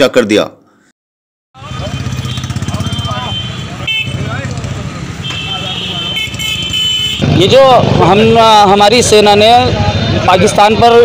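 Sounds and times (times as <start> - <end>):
men's voices chattering: 7.2 - 11.0.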